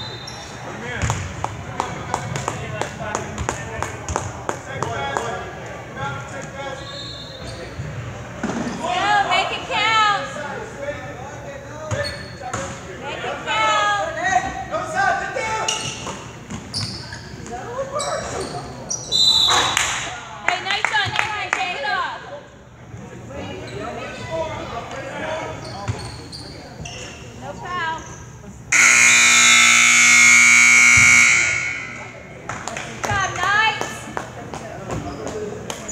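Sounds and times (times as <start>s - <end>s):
crowd voices: 0.0s - 35.9s
scoreboard buzzer horn: 28.7s - 32.3s
echoing voices: 28.8s - 34.2s.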